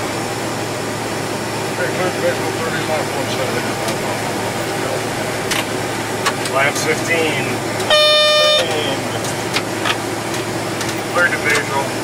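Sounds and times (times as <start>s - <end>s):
electronic tone: 7.9s - 9.0s.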